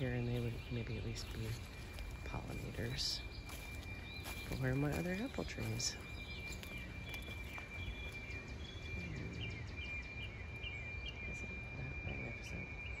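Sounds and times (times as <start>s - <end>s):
small bird chirping: 0.0s - 13.0s
steady high-pitched tone: 5.6s - 13.0s.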